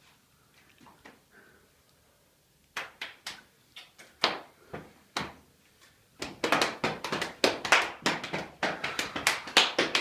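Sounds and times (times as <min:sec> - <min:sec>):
hand claps: 0:02.7 - 0:05.4, 0:06.2 - 0:10.0.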